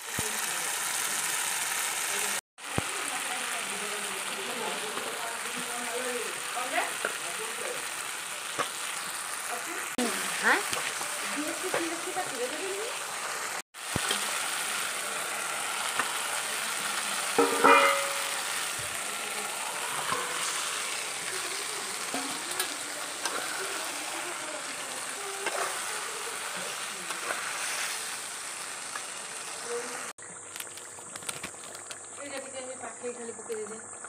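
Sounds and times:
chicken sizzling in a pot: 0.0 - 34.0
spatula scraping pot: 19.8 - 28.2.

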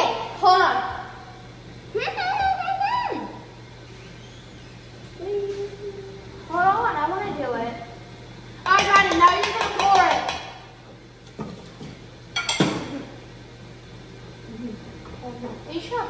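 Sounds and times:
children humming: 5.2 - 6.5
kitchenware clinking and clattering: 8.7 - 10.6, 11.4 - 12.9.

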